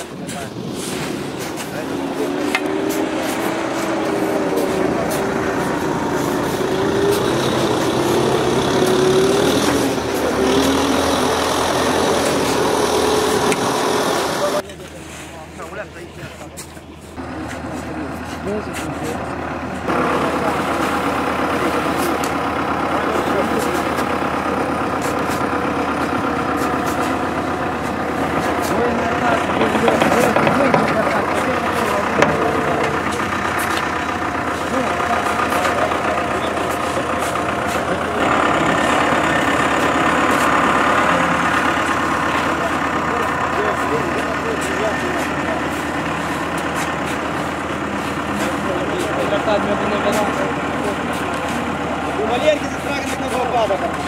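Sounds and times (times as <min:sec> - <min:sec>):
people talking: 0:00.0 - 0:54.0
tractor diesel engine running: 0:00.0 - 0:54.0.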